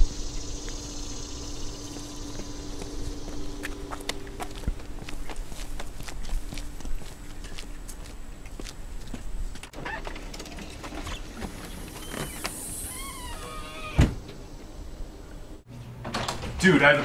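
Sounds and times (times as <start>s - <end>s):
footsteps: 0.0s - 9.8s
squeaking door hinges: 9.7s - 14.4s
door banging shut: 12.1s - 14.4s, 16.0s - 17.0s.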